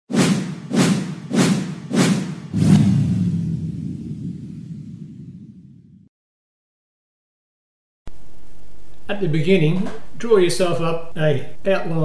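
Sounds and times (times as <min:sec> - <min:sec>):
whooshing hits with low thud: 0:00.1 - 0:06.1
low rumble: 0:02.6 - 0:06.1.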